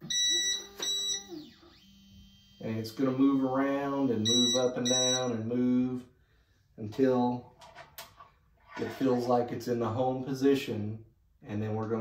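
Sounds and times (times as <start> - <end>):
printer beep: 0.0 - 2.6, 4.1 - 5.3.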